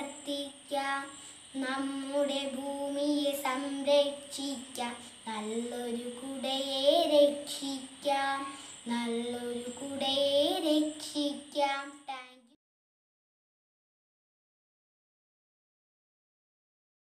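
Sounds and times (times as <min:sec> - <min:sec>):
girl singing solo: 0:00.0 - 0:12.5.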